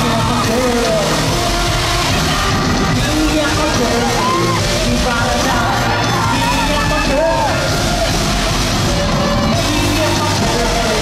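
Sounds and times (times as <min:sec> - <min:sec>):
loud live music: 0:00.0 - 0:11.0.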